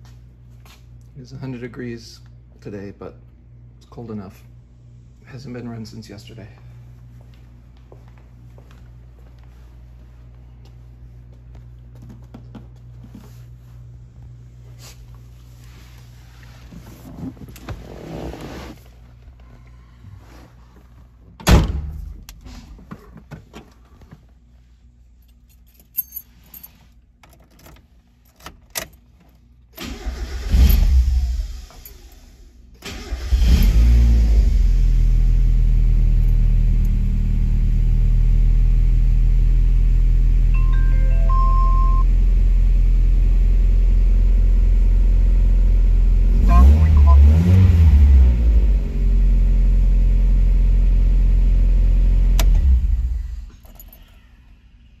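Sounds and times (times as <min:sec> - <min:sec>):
car engine starter cranking: 0:29.8 - 0:32.0, 0:32.8 - 0:33.9
engine throttle blips: 0:40.5 - 0:42.1, 0:46.4 - 0:48.8.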